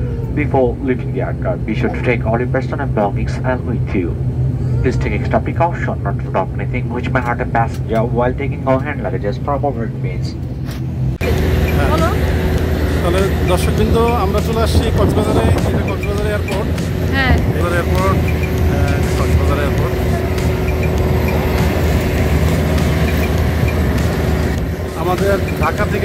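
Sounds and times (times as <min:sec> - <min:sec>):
people talking: 0:00.0 - 0:10.4, 0:11.2 - 0:12.2, 0:13.0 - 0:20.6, 0:24.9 - 0:26.0
aircraft cabin rumble: 0:00.0 - 0:26.0
low engine hum: 0:00.0 - 0:26.0.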